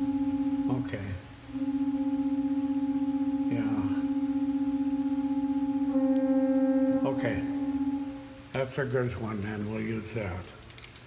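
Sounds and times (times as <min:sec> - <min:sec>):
pipe organ held note: 0:00.0 - 0:08.6.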